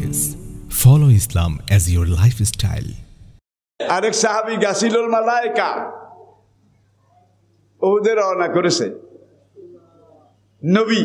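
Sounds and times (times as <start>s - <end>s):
man speaking into a microphone: 0.0s - 3.0s, 3.8s - 6.3s, 7.8s - 9.2s, 10.6s - 11.0s.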